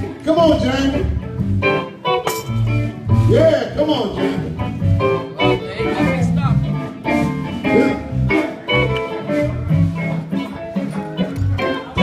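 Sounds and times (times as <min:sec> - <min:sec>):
electric guitar: 0:00.0 - 0:12.0
live blues band: 0:00.0 - 0:12.0.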